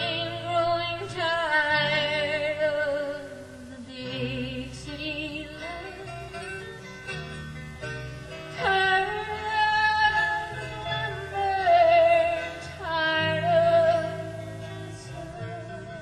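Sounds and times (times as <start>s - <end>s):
live country band playing: 0.0s - 16.0s.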